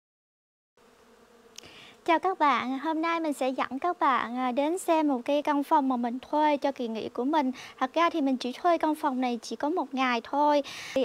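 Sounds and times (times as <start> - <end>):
flying insect buzzing: 0.8 - 11.0.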